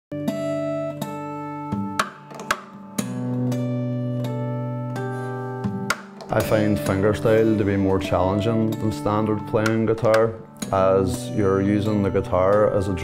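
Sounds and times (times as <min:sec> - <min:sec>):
fingerstyle acoustic guitar: 0:00.2 - 0:13.0
percussive hits on guitar: 0:01.8 - 0:02.9, 0:05.7 - 0:06.9.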